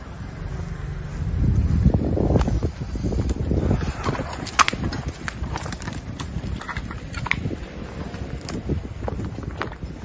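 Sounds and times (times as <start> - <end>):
footsteps on debris: 0.4 - 10.0
sharp crack: 3.2 - 8.7.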